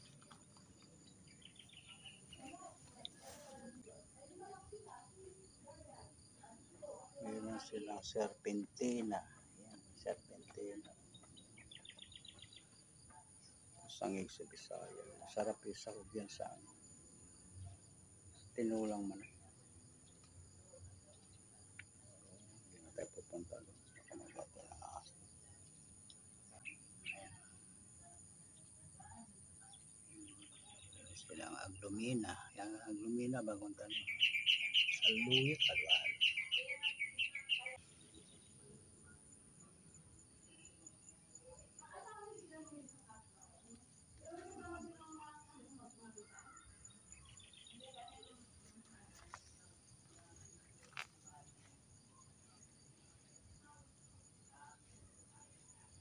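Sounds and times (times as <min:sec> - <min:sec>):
high bird chirps: 0:33.8 - 0:37.8.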